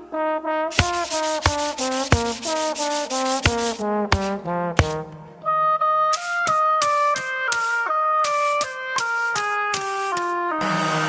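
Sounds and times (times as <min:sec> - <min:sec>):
push-broom sweeping concrete floor: 0:00.7 - 0:05.1, 0:06.2 - 0:10.4
sharp knocks: 0:00.8 - 0:05.2.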